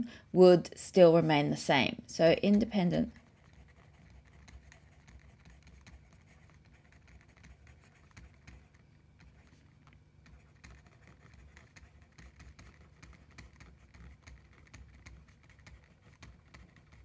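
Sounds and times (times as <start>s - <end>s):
low steady hum: 0.0s - 17.0s
stylus ticking on tablet screen: 2.4s - 17.0s.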